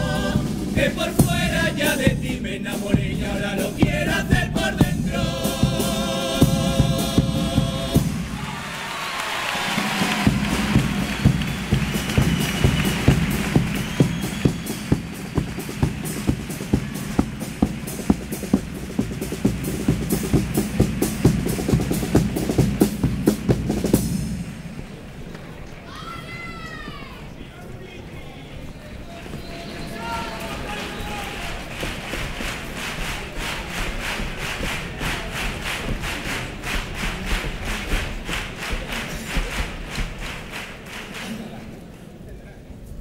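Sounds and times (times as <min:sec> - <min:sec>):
bass drum and snare beat: 0:00.0 - 0:08.5, 0:09.7 - 0:24.8, 0:31.5 - 0:41.2
audience noise: 0:00.0 - 0:43.0.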